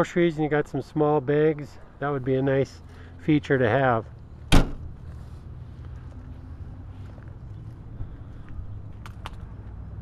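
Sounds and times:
liftgate glass slamming shut: 4.5s - 4.8s.

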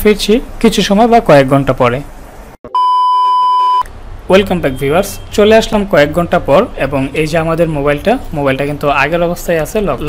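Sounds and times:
high electronic beep: 2.7s - 3.9s.

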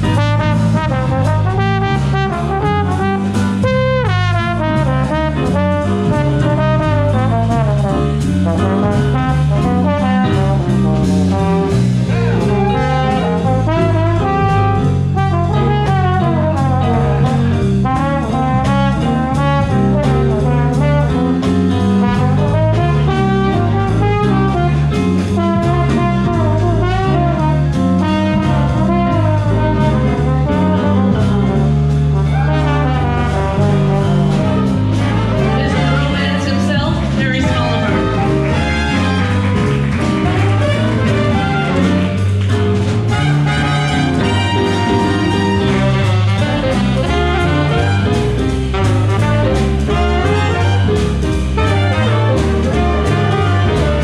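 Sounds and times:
bass line: 0.0s - 54.0s
drums: 0.0s - 54.0s
horn solo: 0.0s - 54.0s.

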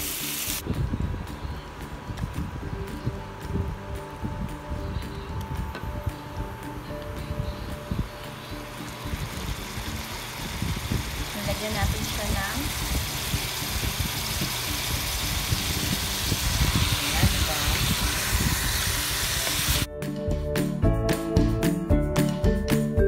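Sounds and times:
chicken sizzling in hot oil: 0.0s - 0.6s, 8.2s - 19.9s
background music: 0.0s - 23.0s.

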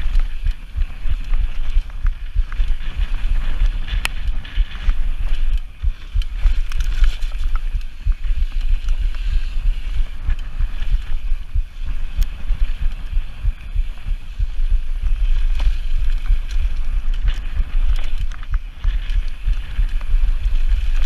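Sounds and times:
bike rattling clicks: 0.0s - 21.0s
wind buffeting microphone: 0.0s - 21.0s.

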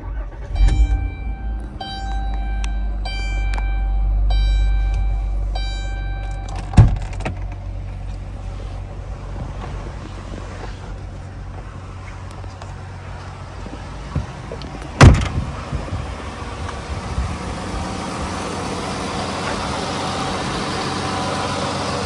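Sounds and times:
car engine starting and idling: 0.0s - 22.0s
dashboard warning chime: 0.4s - 6.9s.

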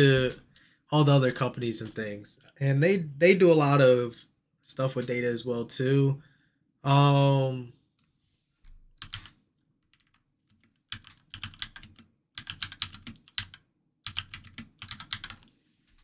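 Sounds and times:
typing on computer keyboard: 1.8s - 2.1s, 9.0s - 15.5s.

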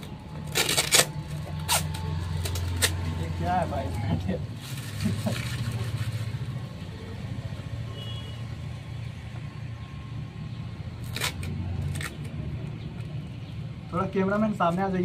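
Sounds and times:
packing tape tearing off box: 0.0s - 3.4s, 4.5s - 6.3s, 11.0s - 12.4s.

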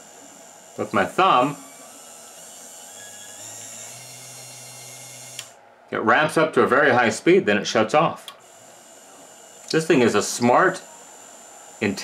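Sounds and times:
small motor humming: 0.0s - 5.6s, 8.4s - 12.0s.

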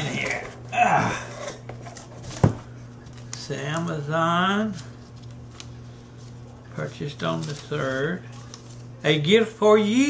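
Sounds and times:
paper rustling: 1.8s - 9.3s.

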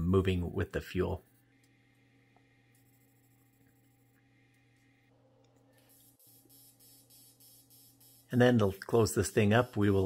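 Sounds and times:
faint welding arc buzz: 0.0s - 10.0s.

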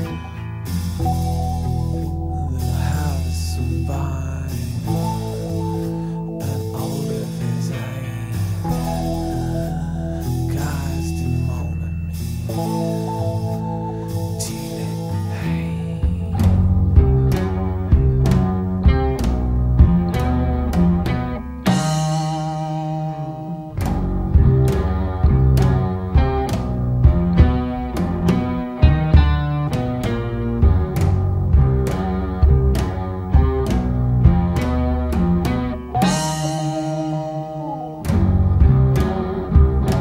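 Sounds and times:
instrumental rock band: 0.0s - 40.0s.

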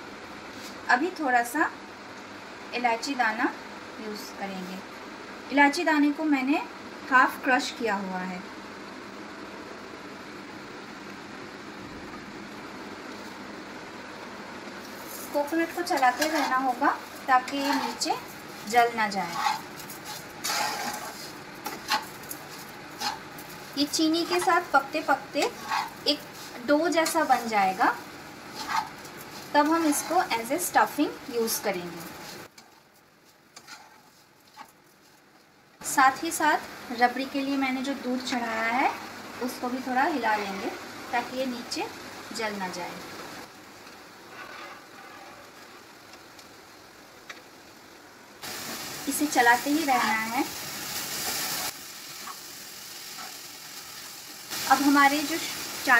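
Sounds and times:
spatula scraping a pan: 14.8s - 30.6s, 33.5s - 34.8s, 44.2s - 45.8s
ladle stirring milk in a pan: 14.9s - 23.8s
faint steady hiss: 22.2s - 55.9s.

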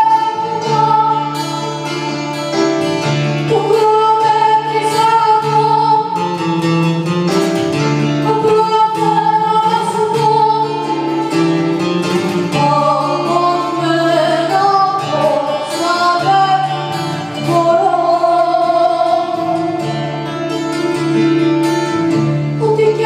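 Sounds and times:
woman singing into microphone: 0.0s - 2.4s, 3.1s - 6.5s, 8.0s - 21.0s, 22.1s - 23.0s
acoustic guitar: 0.0s - 23.0s.

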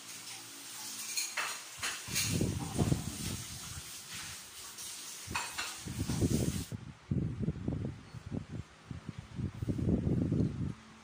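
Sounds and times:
dishes clinking in sink: 0.8s - 3.3s, 5.3s - 5.9s.

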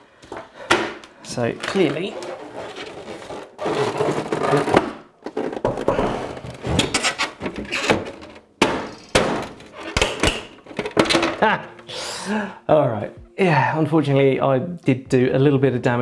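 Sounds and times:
plastic casing creaking and scraping: 1.3s - 11.9s.

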